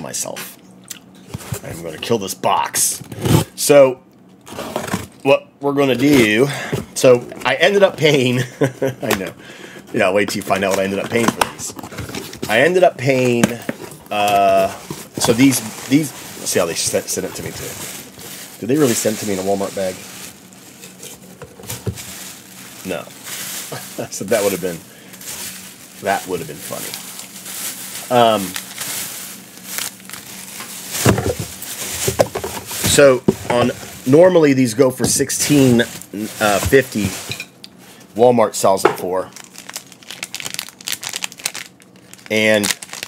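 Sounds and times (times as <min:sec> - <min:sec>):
plastic bag crinkling: 0:10.0 - 0:37.4, 0:39.1 - 0:43.0.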